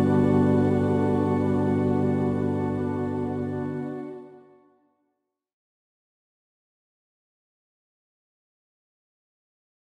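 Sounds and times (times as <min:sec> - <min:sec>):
electronic organ chord: 0:00.0 - 0:04.8.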